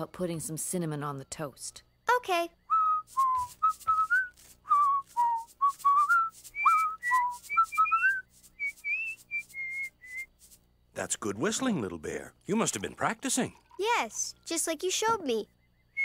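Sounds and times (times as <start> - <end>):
child whistling a tune: 2.7 - 10.3.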